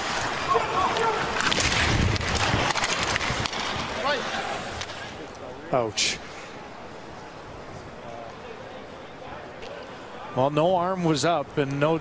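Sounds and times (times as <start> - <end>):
skates scraping ice: 0.0 - 5.3
hockey sticks clattering: 0.0 - 5.4.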